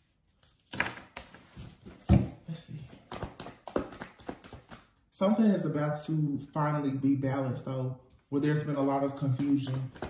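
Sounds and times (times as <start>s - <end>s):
cards slapping and clicking: 2.9s - 5.0s, 9.1s - 10.0s.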